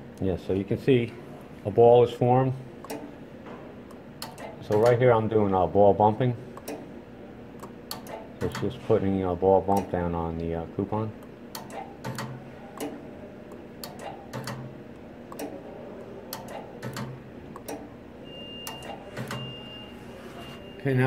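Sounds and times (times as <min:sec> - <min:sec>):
sharp mechanical clicks and ticks: 0:11.5 - 0:12.9, 0:13.5 - 0:14.7, 0:16.3 - 0:17.8
faint steady high tone: 0:18.2 - 0:21.0.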